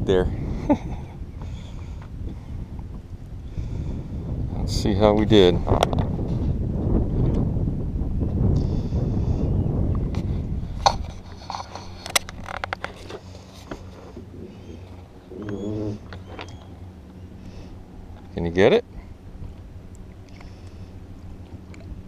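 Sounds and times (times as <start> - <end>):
boat noise: 0.0 - 22.0
wind on microphone: 0.0 - 22.0
bird chirps: 14.5 - 17.4.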